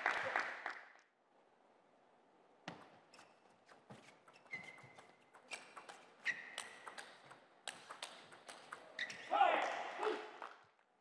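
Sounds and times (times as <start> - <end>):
short high squeak: 3.1 - 7.0.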